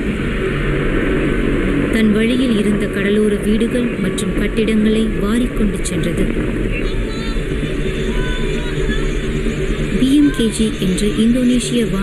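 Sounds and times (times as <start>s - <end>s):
faint voices calling: 2.2s - 12.0s.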